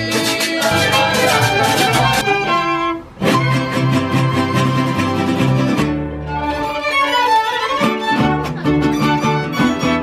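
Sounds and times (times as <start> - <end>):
strummed guitars: 0.0 - 10.0
violins playing melody: 0.0 - 10.0.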